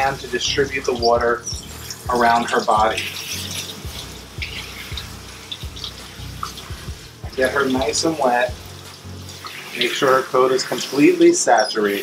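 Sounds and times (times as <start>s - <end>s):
soft background music: 0.0s - 12.0s
water spraying into steel tub: 0.0s - 12.0s.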